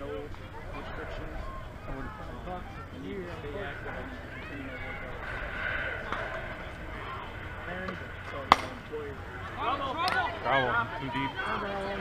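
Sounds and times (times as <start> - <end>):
bat hitting ball crack: 8.5 - 8.8.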